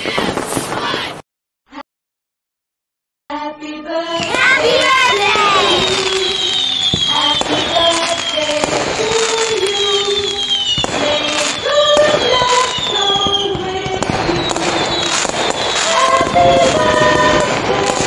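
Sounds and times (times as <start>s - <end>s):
firework bangs: 0.0s - 1.2s, 4.2s - 18.0s
firework whistles falling: 0.0s - 1.2s, 4.1s - 18.0s
birthday song melody: 3.4s - 10.4s.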